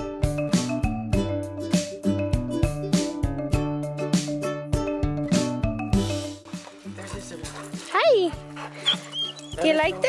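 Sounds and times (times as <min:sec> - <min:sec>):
acoustic guitar music: 0:00.0 - 0:10.0
dog whining: 0:08.6 - 0:09.8.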